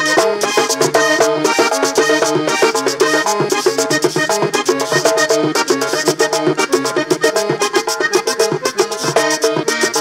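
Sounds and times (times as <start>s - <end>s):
button accordion melody: 0.0s - 10.0s
caja drum beats: 0.0s - 10.0s
guacharaca scraping rhythm: 0.0s - 10.0s.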